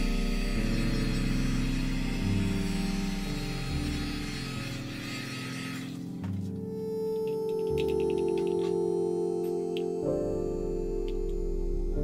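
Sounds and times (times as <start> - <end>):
heat gun motor hum: 0.0 - 6.2
soft ambient music: 0.0 - 12.0.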